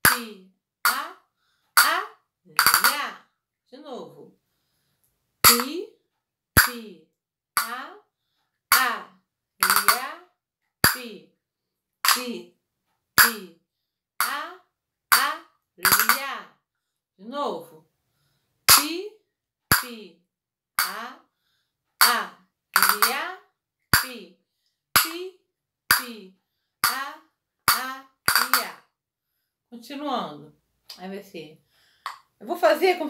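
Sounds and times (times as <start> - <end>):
woman speaking softly: 1.8 - 4.3, 6.6 - 8.0, 8.7 - 10.2, 10.9 - 11.3, 12.1 - 12.6, 13.2 - 13.6, 14.2 - 16.6, 17.2 - 17.9, 19.8 - 20.2, 20.8 - 21.2, 24.0 - 24.4, 26.0 - 28.8, 29.7 - 31.6, 32.4 - 33.0
castanets clicking: 2.6 - 3.0, 9.6 - 10.1, 15.1 - 16.3, 22.8 - 23.3, 27.7 - 28.8.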